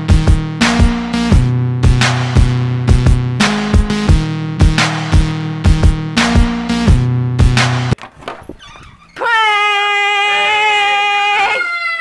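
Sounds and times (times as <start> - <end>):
soft knocks and rustles: 8.0 - 9.1
loud high-pitched wail: 9.2 - 12.0.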